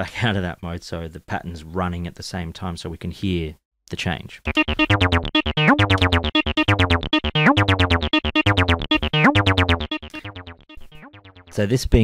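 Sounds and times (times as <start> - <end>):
synthesizer acid bassline: 4.5 - 11.6.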